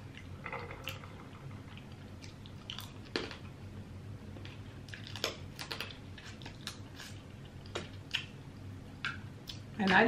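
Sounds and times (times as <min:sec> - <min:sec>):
wet chewing clicks and smacks: 0:01.8 - 0:03.4, 0:04.5 - 0:08.4, 0:09.0 - 0:09.7.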